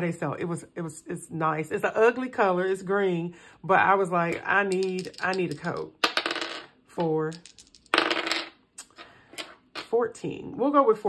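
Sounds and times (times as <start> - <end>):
dice clattering on a desk: 4.6 - 8.6.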